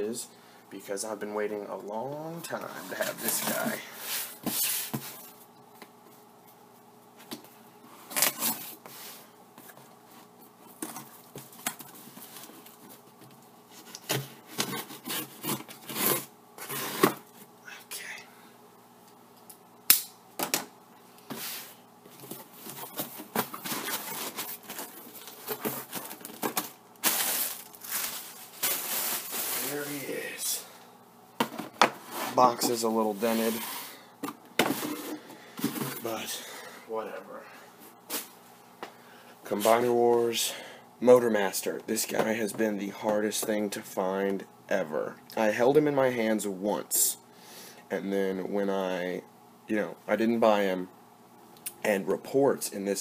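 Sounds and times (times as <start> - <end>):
faint steady hum: 0.0 - 53.0
cardboard scraping: 13.8 - 17.2, 21.3 - 30.0, 31.6 - 33.9
packing tape tearing: 13.9 - 17.2, 22.8 - 29.9
cardboard flaps rustling: 22.1 - 30.1.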